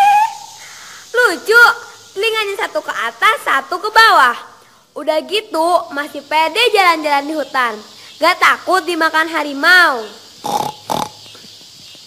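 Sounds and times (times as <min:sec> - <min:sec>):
breathy vocal bursts: 0:10.4 - 0:11.4.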